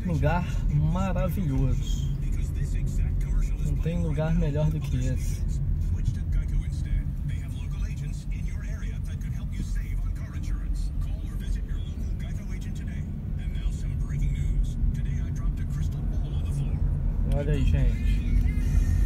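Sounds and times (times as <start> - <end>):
car engine rumble from inside cabin: 0.0 - 19.0.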